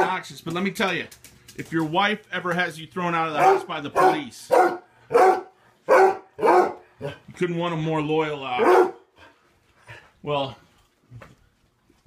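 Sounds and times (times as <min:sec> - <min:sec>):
hound barking: 0:03.4 - 0:07.2, 0:08.6 - 0:09.1.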